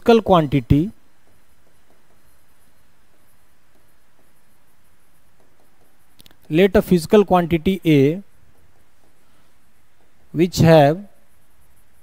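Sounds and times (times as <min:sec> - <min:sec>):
room hiss: 0:00.0 - 0:12.0
pen tapping on glass screen: 0:00.7 - 0:06.6, 0:08.4 - 0:09.3.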